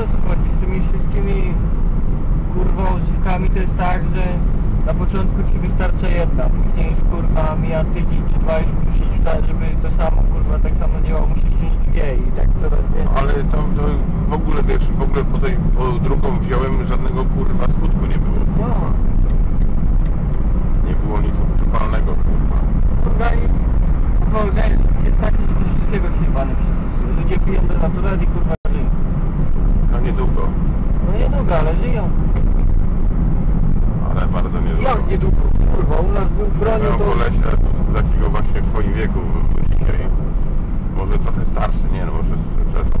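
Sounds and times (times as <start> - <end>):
people talking: 0.0 - 1.6, 2.5 - 19.1, 20.8 - 23.6, 24.2 - 28.9, 29.9 - 32.1, 34.0 - 40.1, 41.0 - 43.0
car road and engine rumble: 0.0 - 43.0
person's voice: 34.0 - 40.1.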